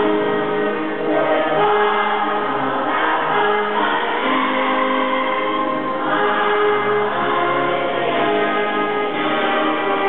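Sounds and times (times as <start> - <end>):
choir singing an anthem: 0.0 - 10.0.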